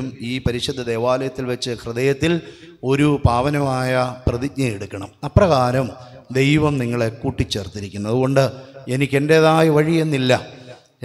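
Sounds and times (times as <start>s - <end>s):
man intoning a prayer over microphone: 0.0s - 11.0s.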